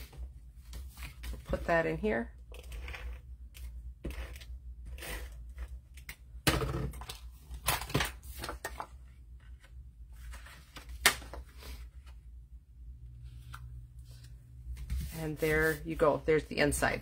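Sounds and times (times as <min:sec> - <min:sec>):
paper rustling: 0:08.2 - 0:12.2.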